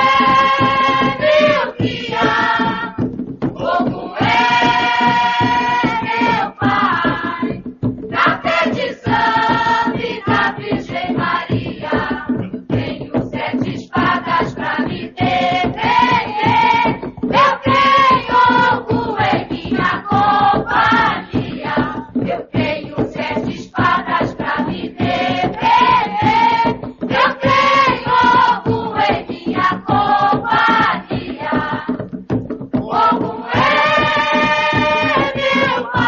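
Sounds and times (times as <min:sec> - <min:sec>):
group singing in chorus: 0:00.0 - 0:32.1, 0:32.7 - 0:36.0
percussive beat: 0:00.0 - 0:36.0.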